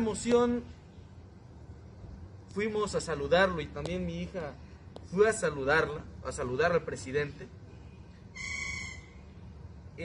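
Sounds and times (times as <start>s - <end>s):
bird whistling high note: 8.3s - 9.2s.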